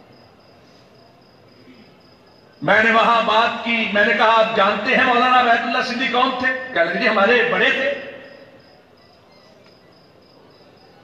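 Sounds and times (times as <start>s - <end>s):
faint cricket chirping: 0.0s - 11.0s.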